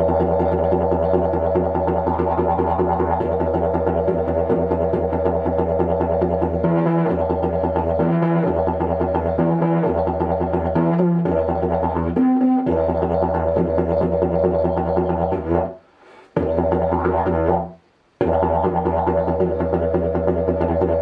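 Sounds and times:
didgeridoo drone: 0:00.0 - 0:15.8, 0:16.4 - 0:21.0.

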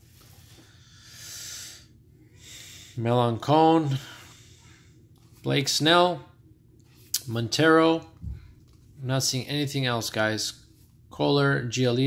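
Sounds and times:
soft nasal breath: 0:00.0 - 0:03.0, 0:03.9 - 0:05.1.

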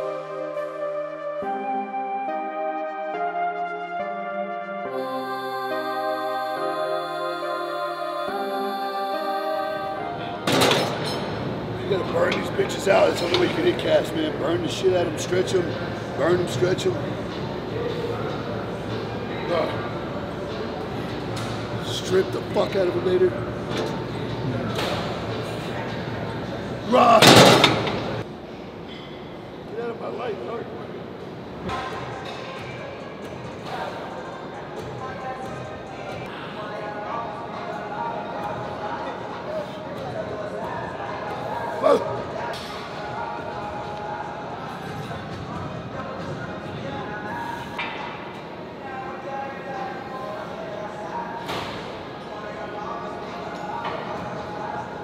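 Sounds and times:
background music: 0:00.0 - 0:13.7
faint voices: 0:29.6 - 0:55.0.

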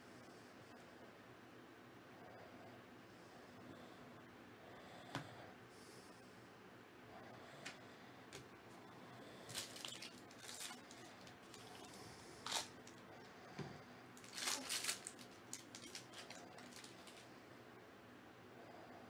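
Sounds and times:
foil wrapper crinkling and tearing: 0:09.5 - 0:13.0, 0:14.2 - 0:17.3.

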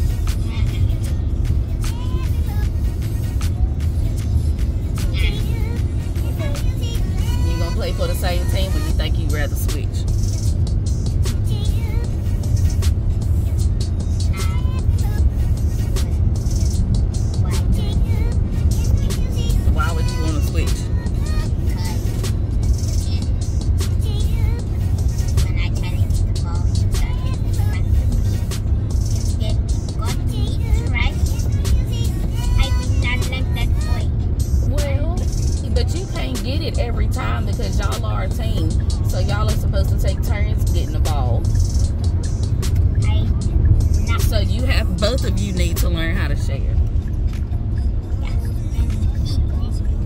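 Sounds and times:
background music: 0:00.0 - 0:50.0
car road and engine rumble: 0:00.0 - 0:50.0.

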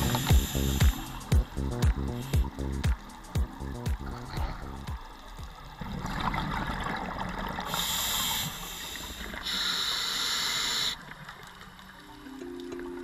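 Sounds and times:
regulator inhalation hiss: 0:00.0 - 0:03.3, 0:07.7 - 0:11.0
gurgling exhaust bubbles: 0:03.4 - 0:05.0.

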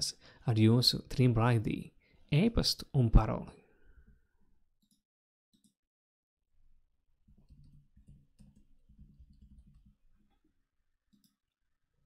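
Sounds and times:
computer keyboard typing: 0:07.3 - 0:10.3.

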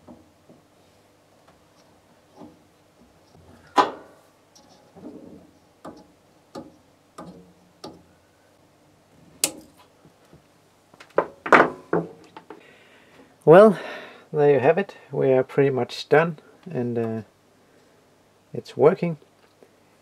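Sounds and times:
tool clicking on metal: 0:05.8 - 0:08.0.

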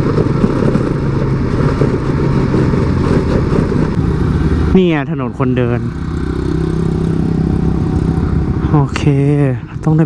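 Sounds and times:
motorbike engine running: 0:00.0 - 0:08.9
low road rumble: 0:00.0 - 0:10.0.

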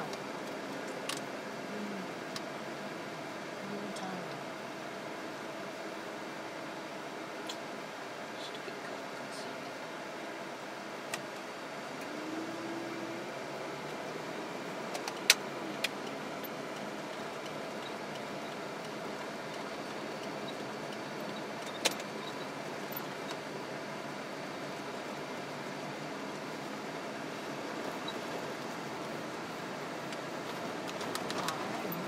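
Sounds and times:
car engine and tyre noise: 0:12.8 - 0:32.0.

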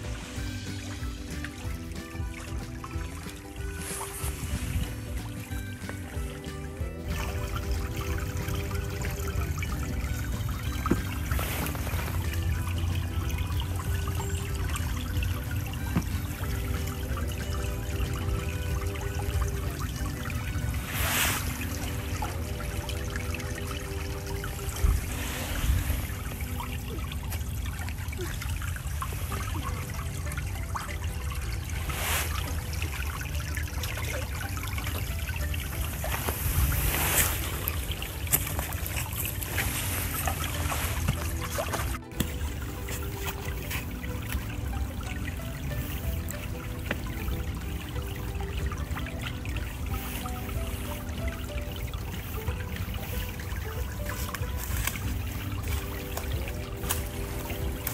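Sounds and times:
stream trickling over pebbles: 0:00.0 - 0:57.9.

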